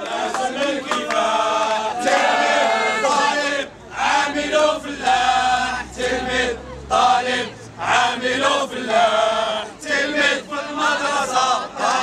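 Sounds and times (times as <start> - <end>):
men chanting slogans: 0.0 - 12.0.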